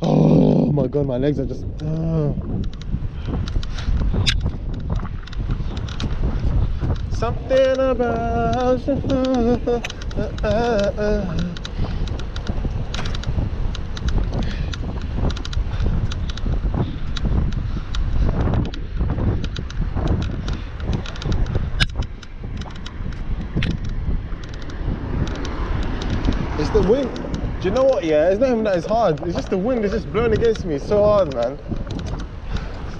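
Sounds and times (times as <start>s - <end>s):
wind buffeting microphone: 0.0s - 32.9s
light clicks: 1.7s - 32.9s.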